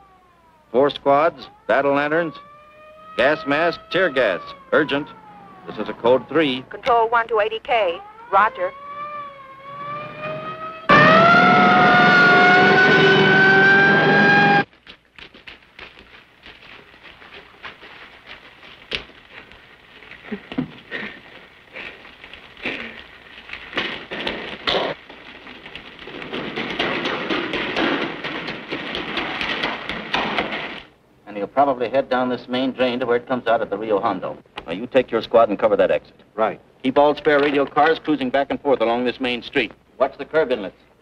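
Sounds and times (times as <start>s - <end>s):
police siren wailing: 0.0s - 6.8s, 7.8s - 14.7s
scattered knocks: 25.7s - 30.9s.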